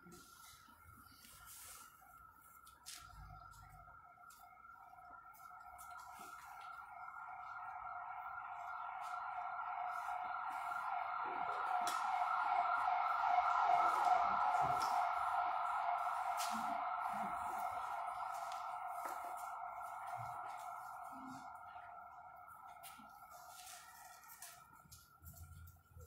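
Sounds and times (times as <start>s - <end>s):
wavering emergency siren: 0.0s - 26.0s.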